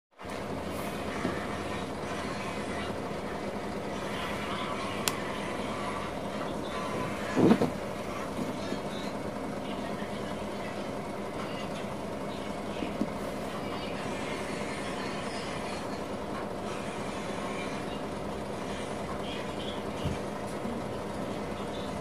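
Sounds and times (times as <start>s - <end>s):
transformer humming: 0.2s - 22.0s.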